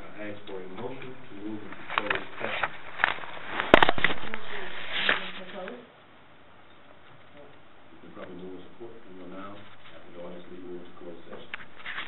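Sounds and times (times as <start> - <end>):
murmured conversation: 0.0 - 6.0, 7.0 - 11.7.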